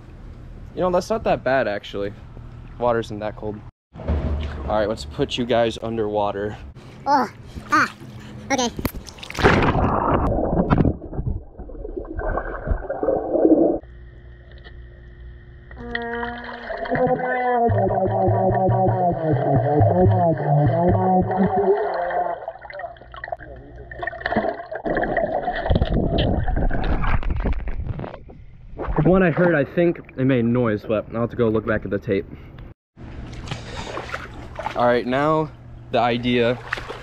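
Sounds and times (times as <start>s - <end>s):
muffled underwater trombone tone: 15.8s - 22.4s.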